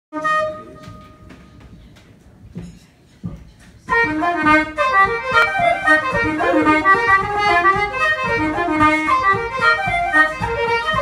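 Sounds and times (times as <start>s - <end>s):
held musical note: 4.0s - 11.0s.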